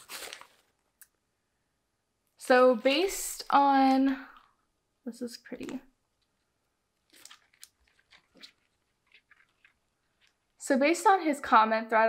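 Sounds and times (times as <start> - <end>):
faint rustles and crackles: 5.6 - 10.6.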